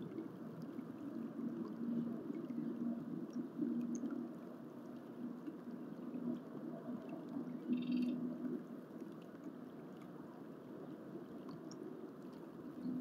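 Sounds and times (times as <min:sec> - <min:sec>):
intermittent low hum: 0:00.0 - 0:13.0.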